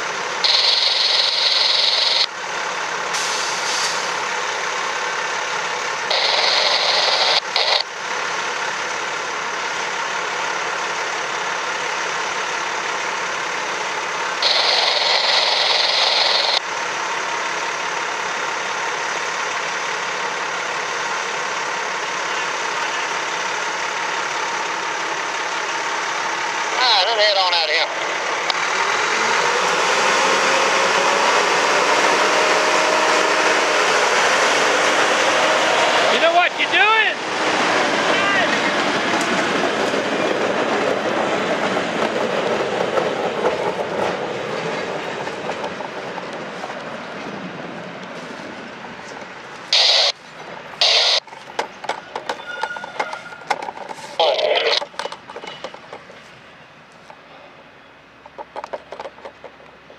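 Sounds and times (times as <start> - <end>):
diesel engine working: 0.0 - 59.9
short sharp bursts: 0.4 - 2.3, 6.1 - 7.8, 14.4 - 16.6, 49.7 - 50.2, 50.8 - 51.2
steel wheels rolling on rails: 0.4 - 2.3, 37.2 - 49.7, 51.2 - 54.2, 54.8 - 56.3.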